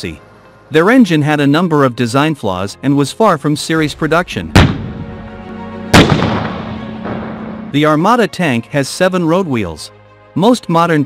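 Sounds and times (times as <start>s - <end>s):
background music: 0.0s - 11.0s
heavy boom: 4.5s - 5.2s, 5.9s - 7.8s.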